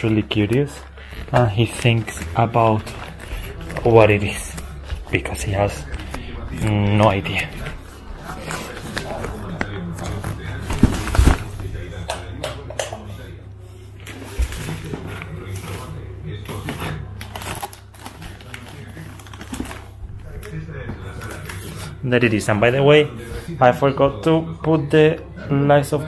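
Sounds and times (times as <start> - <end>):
wrapping paper crinkling: 0.0 - 12.0, 14.0 - 22.8.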